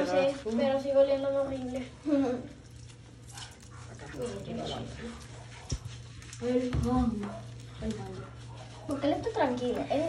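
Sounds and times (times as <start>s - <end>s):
hands rubbing soapy fur: 0.0s - 10.0s.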